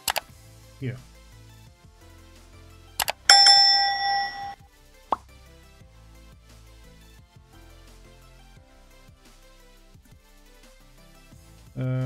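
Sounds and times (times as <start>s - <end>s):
quick double click: 0.0s - 0.2s
soft background music: 0.0s - 12.0s
notification bell ding: 3.3s - 4.6s.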